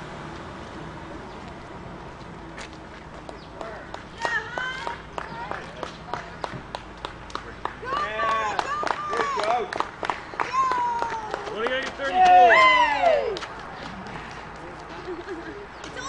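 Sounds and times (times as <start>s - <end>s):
hand claps: 3.2s - 12.4s, 13.0s - 15.1s
high shouting voices: 4.1s - 6.2s, 7.8s - 9.7s, 10.4s - 13.5s.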